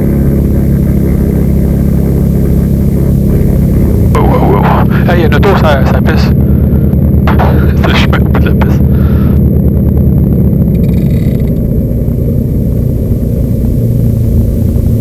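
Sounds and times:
propeller engines droning: 0.0 - 15.0.

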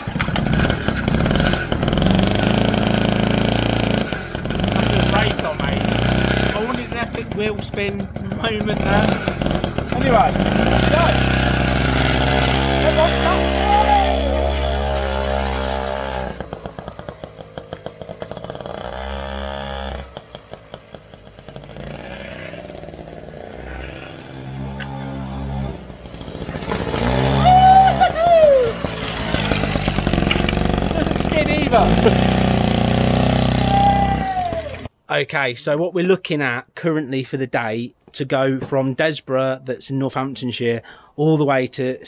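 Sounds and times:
two-stroke moped engine revving: 0.0 - 34.9
people laughing: 27.4 - 29.0, 31.8 - 32.3.

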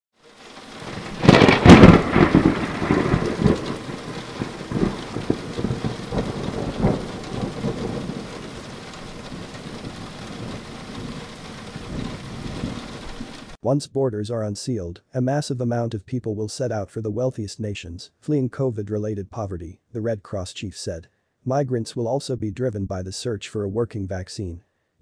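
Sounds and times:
steady rain: 0.2 - 13.6
thunder crack and rumble: 0.4 - 13.6.

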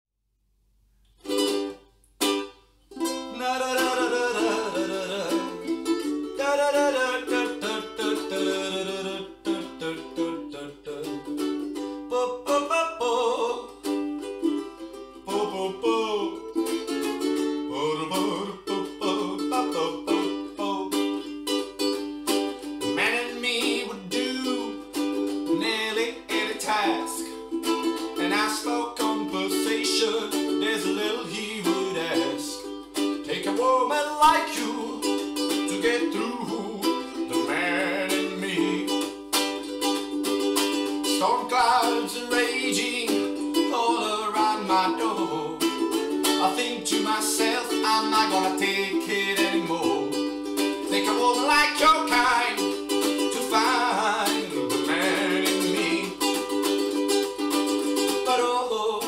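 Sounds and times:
ukulele strumming: 1.1 - 59.0
man singing: 3.0 - 11.4, 12.0 - 14.0, 15.2 - 21.6, 22.8 - 39.5, 41.0 - 57.0, 57.8 - 59.0.

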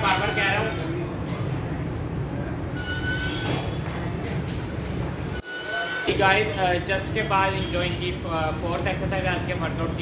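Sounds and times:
exercise machine squealing: 0.0 - 1.0, 2.8 - 3.8, 5.4 - 6.6.

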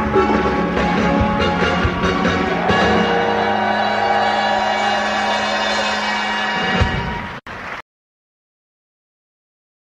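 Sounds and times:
pop band sustained chord: 0.0 - 7.1.

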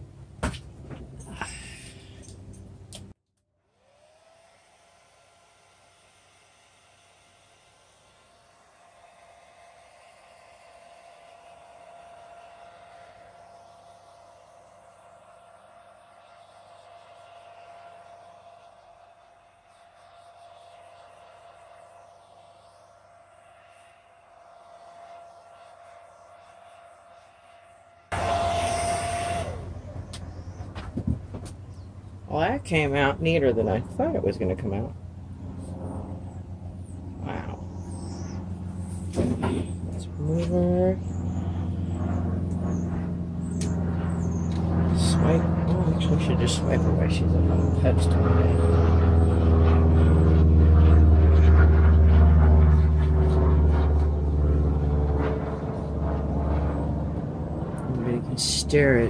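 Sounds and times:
blow dryer running: 3.6 - 14.6, 28.1 - 54.4.

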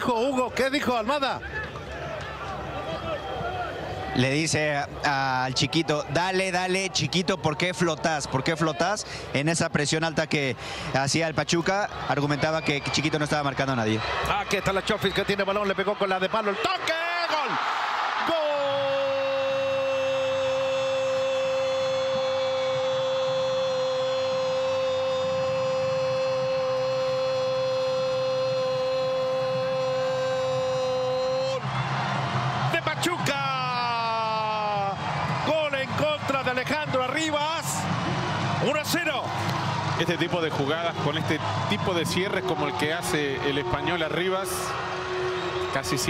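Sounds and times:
stadium crowd noise: 0.0 - 46.0
excited speech: 4.2 - 17.6, 18.2 - 20.9, 32.7 - 37.8.

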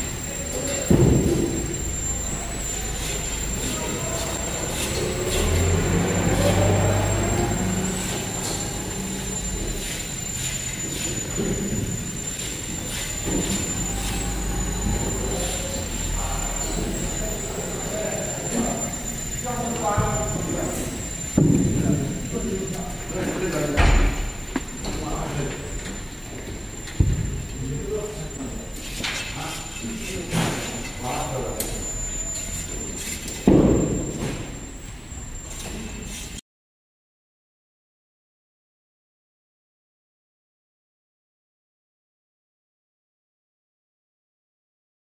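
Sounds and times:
indistinct voices: 0.0 - 33.4
steady high-pitched whine: 0.0 - 36.4.

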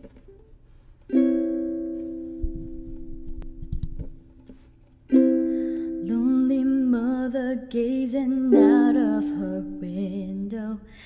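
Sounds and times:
ukulele chord strummed: 0.0 - 10.4.

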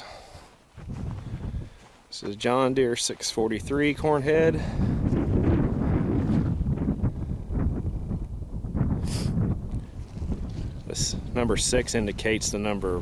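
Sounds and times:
wind buffeting microphone: 0.7 - 1.9, 3.4 - 13.0.

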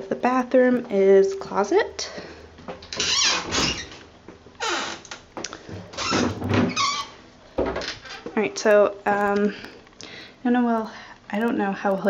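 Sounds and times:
closet doors sliding open: 2.9 - 4.0, 4.6 - 8.2.

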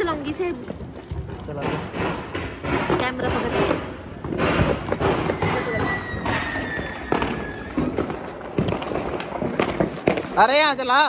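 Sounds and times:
continuous hiss and crackle: 0.0 - 11.0
firecrackers popping and cracking: 0.0 - 11.0.

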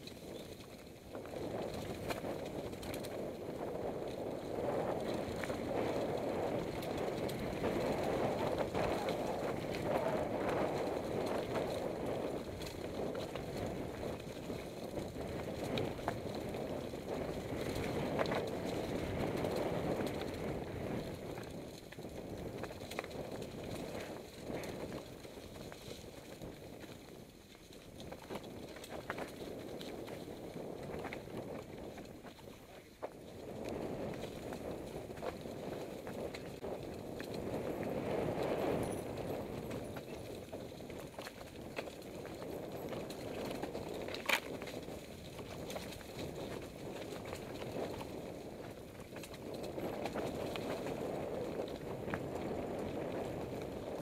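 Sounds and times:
bike knocking and rattling: 0.0 - 54.0
tyres rolling over stones and leaves: 0.0 - 54.0.

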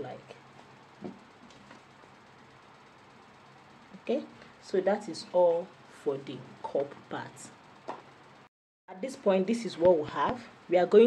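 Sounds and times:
low room hiss: 0.0 - 11.0.

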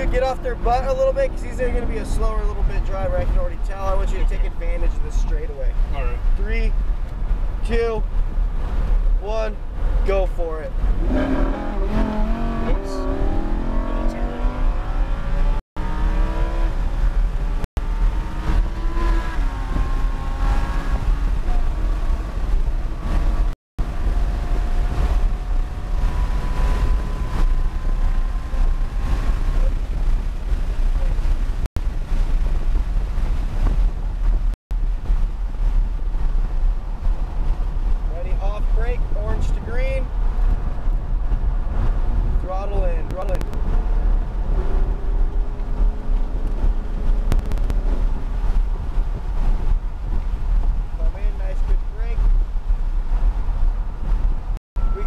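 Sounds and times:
car engine accelerating: 0.0 - 6.2, 10.7 - 34.5
road and wind rumble: 0.0 - 55.0.

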